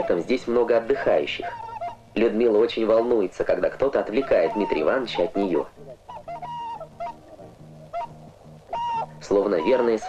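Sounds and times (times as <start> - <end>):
swan calling: 0.0 - 2.4, 4.0 - 10.0
soft background music: 0.0 - 10.0.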